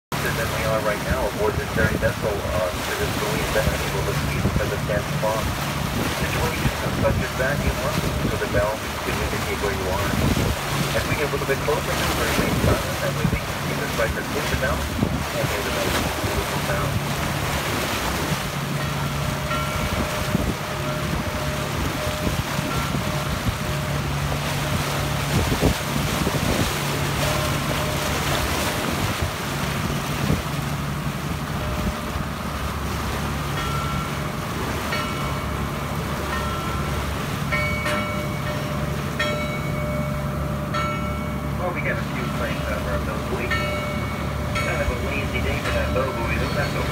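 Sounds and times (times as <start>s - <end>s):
rushing water: 0.0s - 46.9s
boat engine running: 0.1s - 46.9s
wind on microphone: 5.4s - 11.2s, 11.9s - 30.6s
buoy bell ringing: 18.8s - 24.0s, 33.5s - 41.6s, 43.5s - 46.9s.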